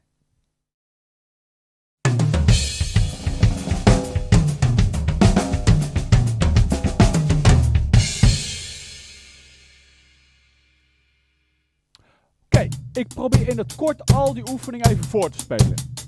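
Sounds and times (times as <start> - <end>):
drum kit playing fast: 2.1 - 9.7, 12.5 - 16.0.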